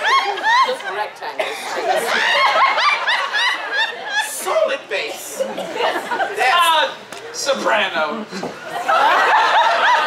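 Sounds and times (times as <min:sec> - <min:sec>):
people laughing: 0:00.0 - 0:06.7, 0:08.3 - 0:10.0.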